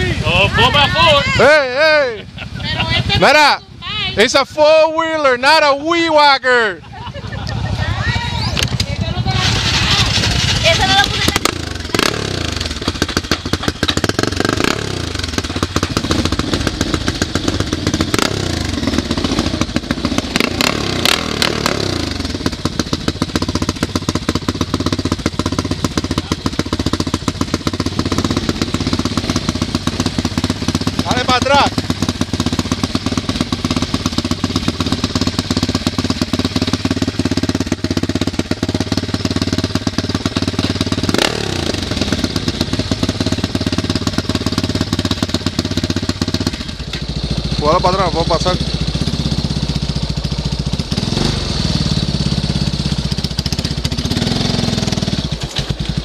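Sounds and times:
quad engines revving: 0.0s - 56.0s
person laughing: 2.1s - 3.2s, 6.7s - 7.9s, 13.4s - 14.0s.

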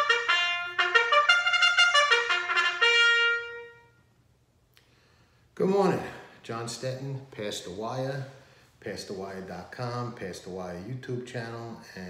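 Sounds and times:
trumpet note held: 0.0s - 4.1s.

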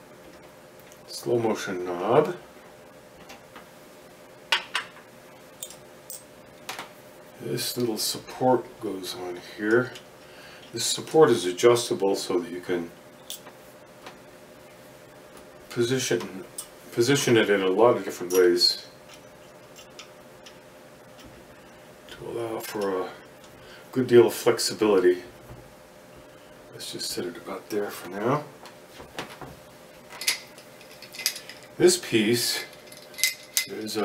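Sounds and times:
faint steady hum: 0.0s - 34.0s
metal parts clicking: 30.2s - 31.8s, 32.6s - 34.0s.

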